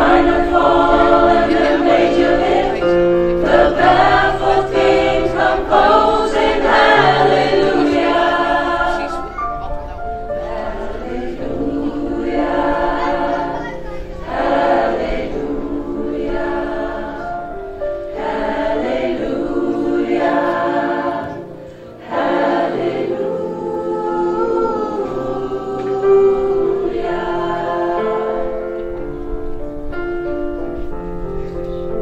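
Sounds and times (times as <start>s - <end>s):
mixed choir singing: 0.0s - 29.6s.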